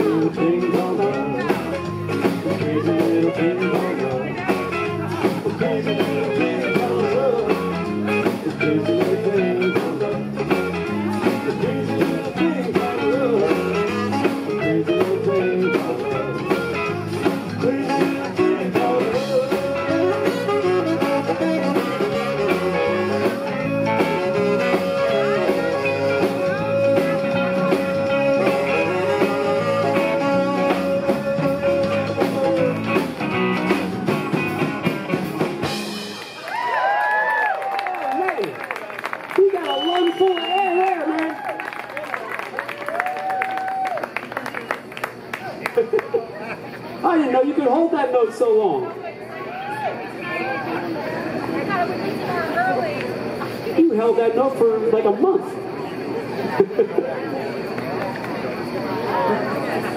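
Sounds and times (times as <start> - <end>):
live rock band playing: 0.0 - 37.3
audience cheering and whooping: 36.2 - 46.0, 49.4 - 50.1
audience whistle: 39.4 - 44.9.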